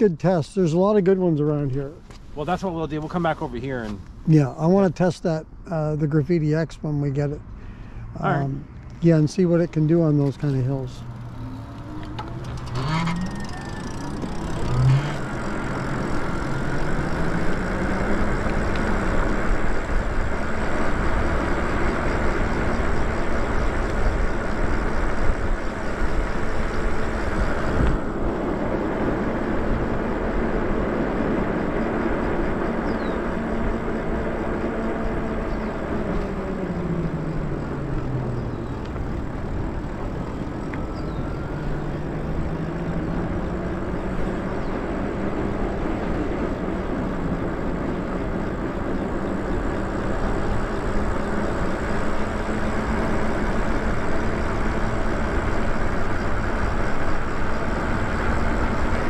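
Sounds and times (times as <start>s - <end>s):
tyre noise on pavement: 8.4s - 59.0s
electric motor whine: 9.8s - 59.0s
wind noise: 11.7s - 43.4s.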